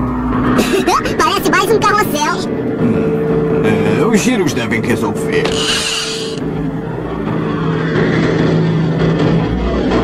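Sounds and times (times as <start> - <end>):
cartoon machine motor whirring: 5.4 - 6.4.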